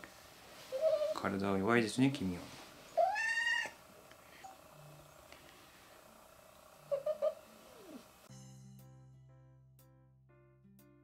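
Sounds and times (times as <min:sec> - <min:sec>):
cat chirping: 0:02.9 - 0:03.8, 0:06.8 - 0:08.0
cat meowing: 0:03.0 - 0:03.8.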